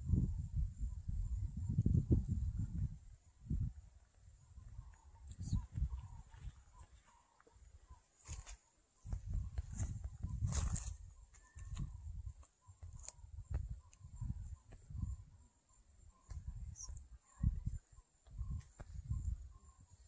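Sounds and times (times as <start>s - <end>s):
faint bird chirps: 0.1s - 20.0s.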